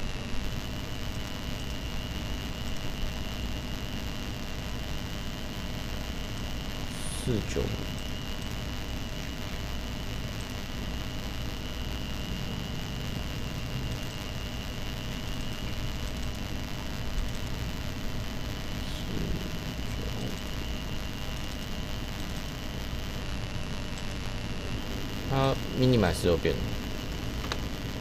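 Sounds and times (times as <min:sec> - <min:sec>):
low hum: 0:00.0 - 0:28.0
background hiss: 0:05.6 - 0:23.2.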